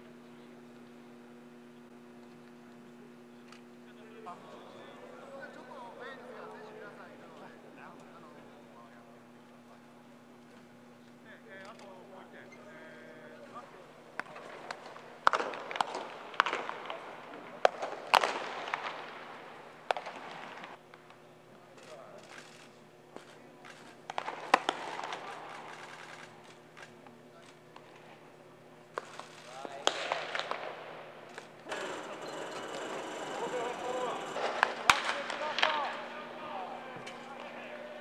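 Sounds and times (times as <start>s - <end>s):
steady background noise: 0.0s - 38.0s
baseballs knocking: 13.6s - 21.1s, 23.2s - 27.0s, 34.2s - 36.2s.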